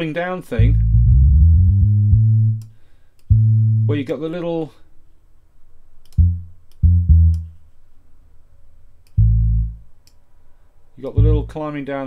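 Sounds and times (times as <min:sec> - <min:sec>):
synth bass notes: 0:00.6 - 0:02.7, 0:03.3 - 0:04.1, 0:06.2 - 0:07.6, 0:09.2 - 0:09.9, 0:11.1 - 0:11.6.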